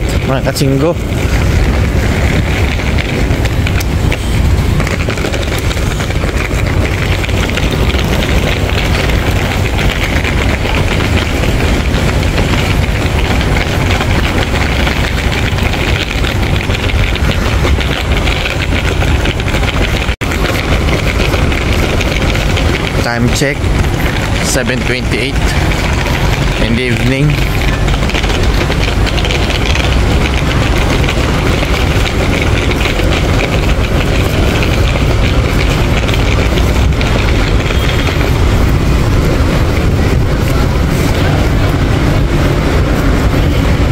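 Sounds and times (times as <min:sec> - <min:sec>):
road traffic rumble: 0:00.0 - 0:43.9.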